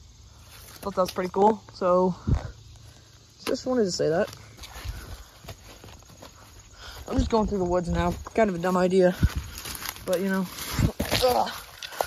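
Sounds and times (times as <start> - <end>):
footsteps through dry leaves: 4.2 - 12.0.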